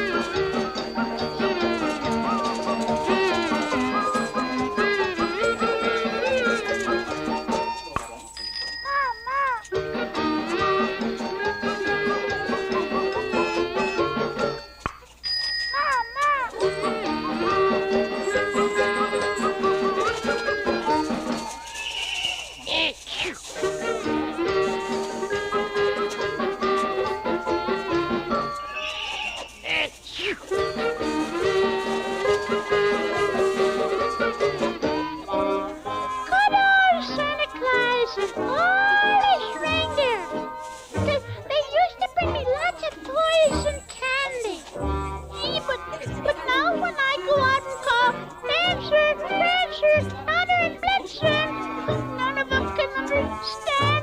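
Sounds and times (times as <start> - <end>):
christmas song: 0.0 - 54.0
horse whinnying: 21.7 - 23.4, 28.7 - 30.0.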